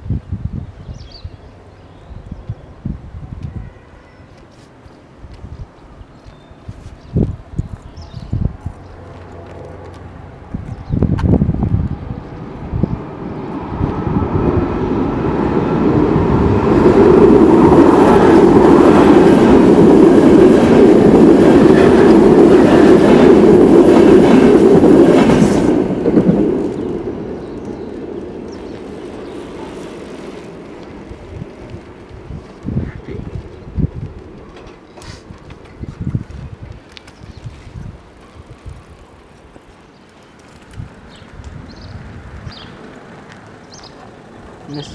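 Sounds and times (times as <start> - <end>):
electric train passing: 7.4 - 44.9.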